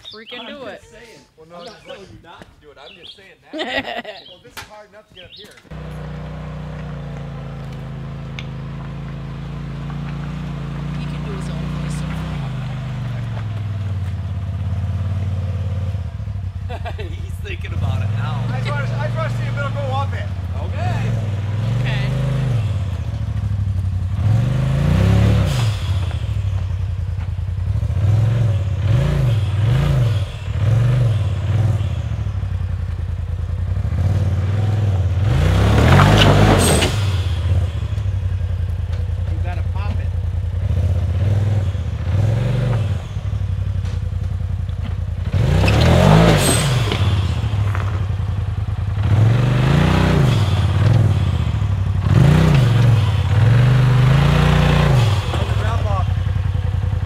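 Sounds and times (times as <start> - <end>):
utility vehicle engine droning: 5.2 - 57.0.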